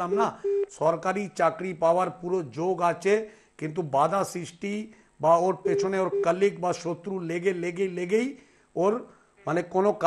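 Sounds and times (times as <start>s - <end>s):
man talking: 0.0s - 10.0s
telephone line beep: 0.4s - 0.8s, 5.6s - 6.6s.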